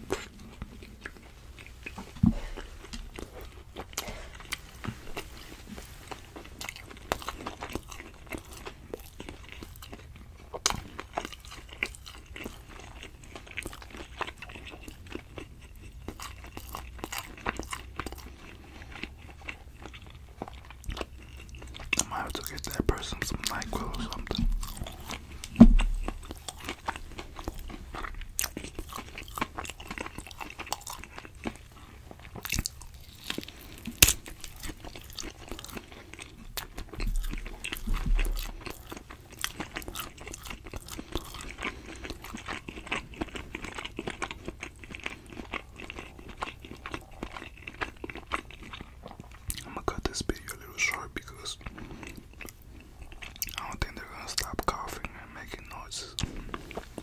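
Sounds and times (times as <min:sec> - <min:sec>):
person chewing meat: 0:00.0 - 0:57.0
low knocks: 0:25.5 - 0:26.1.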